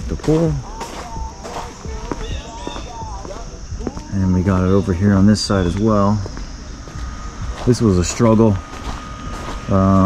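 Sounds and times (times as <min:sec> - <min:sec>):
footsteps on stone pavers: 0:00.0 - 0:10.0
high-pitched insect drone: 0:00.0 - 0:10.0.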